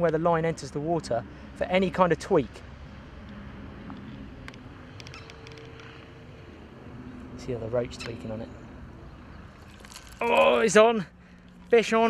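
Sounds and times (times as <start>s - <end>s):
faint hum: 0.1s - 12.0s.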